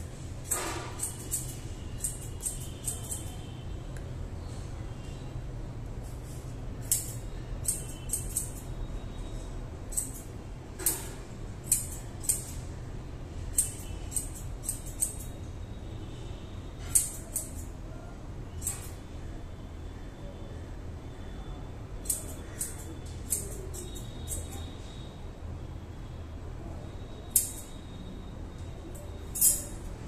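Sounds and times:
scissors snipping hair: 0:00.5 - 0:03.5, 0:06.8 - 0:08.8, 0:09.9 - 0:12.6, 0:13.5 - 0:15.3, 0:16.9 - 0:17.7, 0:18.6 - 0:19.0, 0:22.0 - 0:24.6, 0:27.3 - 0:27.7.

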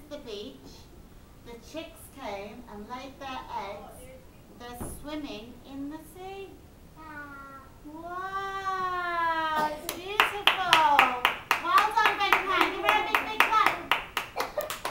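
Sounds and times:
hands clapping in applause: 0:09.8 - 0:14.9.

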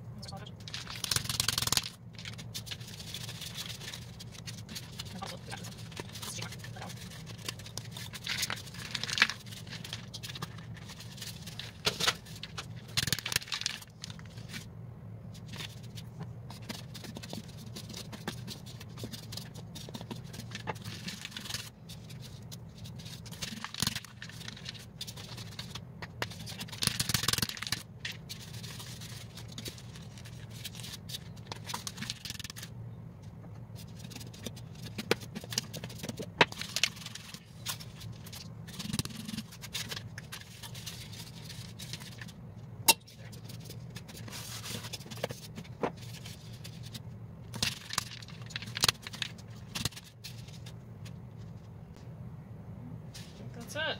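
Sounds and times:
steady low hum: 0:00.0 - 0:53.9.

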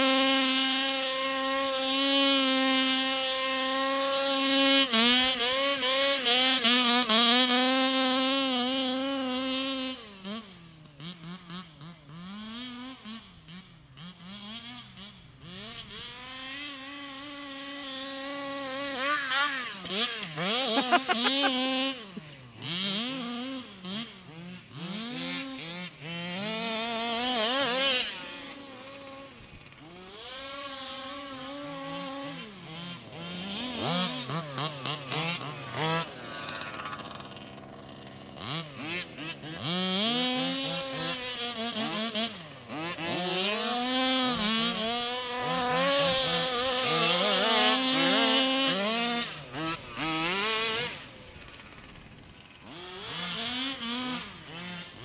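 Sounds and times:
two-stroke engine revving: 0:00.0 - 0:55.0.

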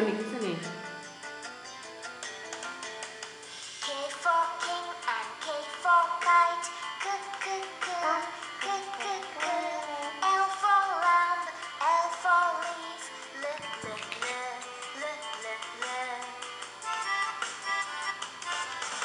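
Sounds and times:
children's song from smartphone: 0:03.7 - 0:19.0.

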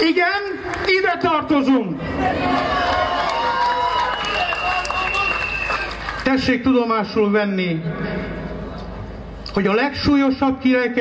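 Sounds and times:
crowd cheering and calling out: 0:02.0 - 0:06.0
high whistle tone: 0:03.8 - 0:06.0.

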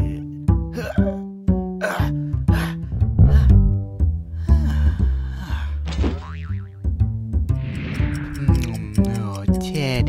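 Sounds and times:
cartoon background music: 0:00.0 - 0:10.0
plucked bass line: 0:02.5 - 0:10.0.

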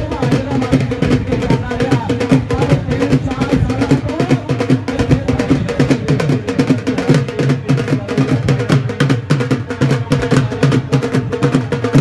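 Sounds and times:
drum beaten in fast rhythm: 0:00.0 - 0:12.0
voices: 0:00.0 - 0:12.0.

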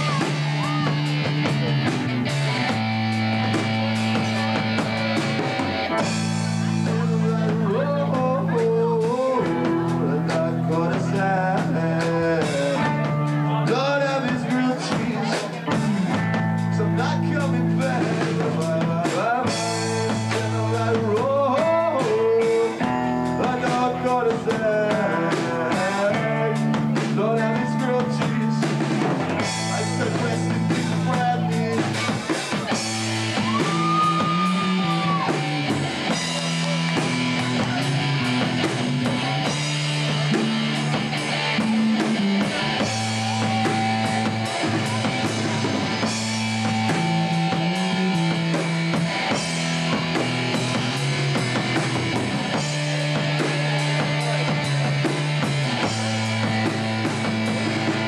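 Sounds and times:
live rock band playing: 0:00.0 - 0:58.0.

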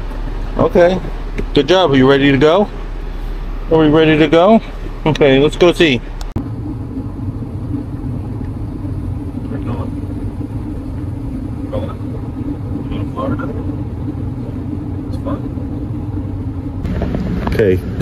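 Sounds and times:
car driving low rumble: 0:00.0 - 0:18.0.

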